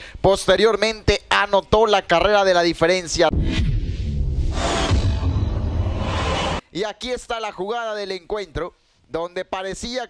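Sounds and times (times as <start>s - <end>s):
deep bass rumble: 3.3s - 6.6s
dramatic music sting: 3.3s - 6.6s
swooshing sweep: 3.3s - 6.6s.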